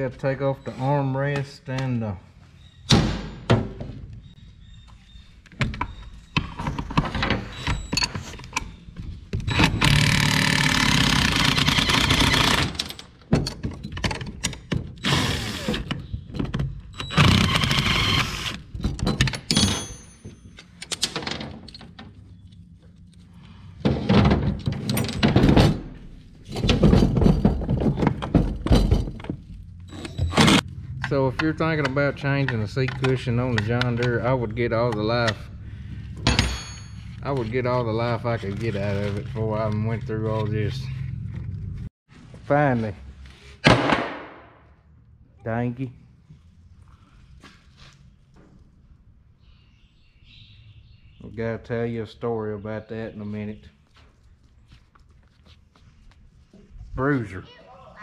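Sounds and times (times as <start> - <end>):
tool clicks and knocks: 30.0 - 35.4.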